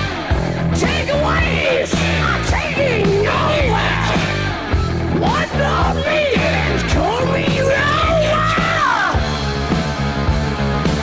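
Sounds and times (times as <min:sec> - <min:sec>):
bass and drums: 0:00.0 - 0:11.0
lead guitar line bending: 0:00.0 - 0:11.0.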